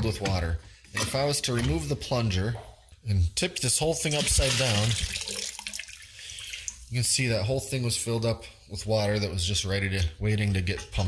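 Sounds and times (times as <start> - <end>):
water splashing into bucket: 4.0 - 7.2.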